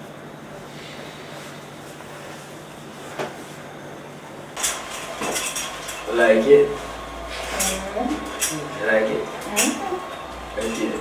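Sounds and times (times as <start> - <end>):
room hum: 0.0 - 11.0
clattering and clinking: 4.6 - 6.1.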